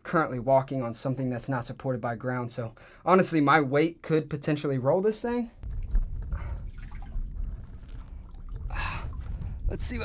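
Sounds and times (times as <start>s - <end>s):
faint trickling water: 5.6s - 10.0s
wind buffeting microphone: 5.6s - 10.0s.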